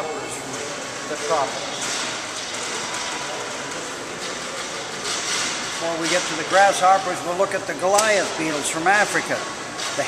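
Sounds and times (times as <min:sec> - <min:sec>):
indoor hall background hiss: 0:00.0 - 0:10.0.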